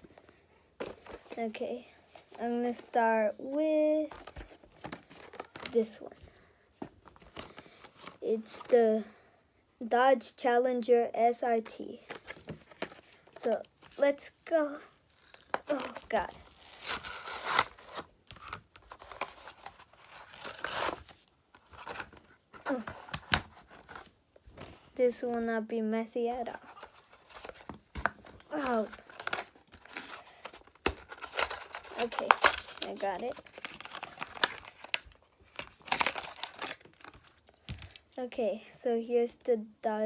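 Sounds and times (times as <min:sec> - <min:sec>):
packaging being torn open: 0:15.1 - 0:21.2, 0:28.6 - 0:38.0.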